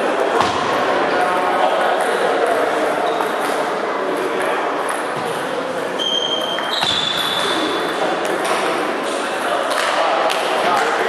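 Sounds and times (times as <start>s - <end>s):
high squeak: 6.0s - 7.6s.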